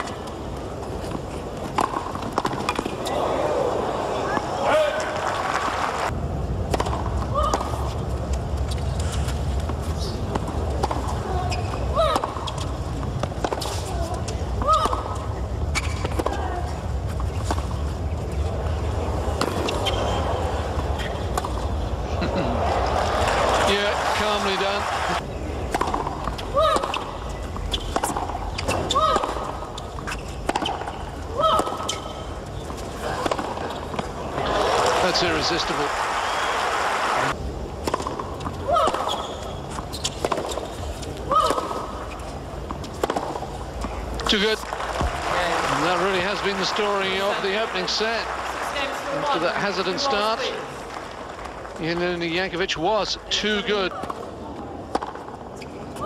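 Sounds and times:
short shoe squeaks: 15.7s - 16.2s, 19.5s - 20.4s, 26.9s - 29.2s, 31.8s - 32.3s, 39.0s - 41.0s.

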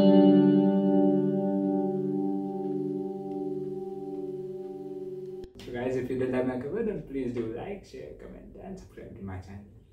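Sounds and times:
acoustic guitar chord ringing: 0.0s - 5.6s.

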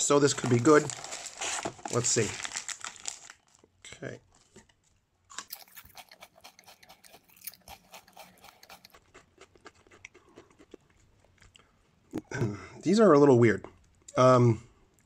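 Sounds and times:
potato chip crunching: 5.3s - 11.6s.

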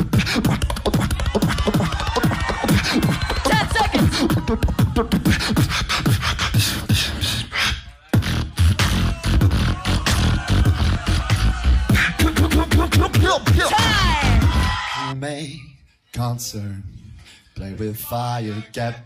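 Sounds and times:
beatboxing into a microphone: 0.0s - 14.8s.

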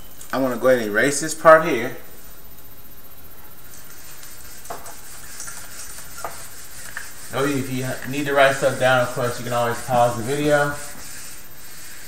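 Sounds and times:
eraser scrubbing whiteboard: 3.7s - 12.0s.

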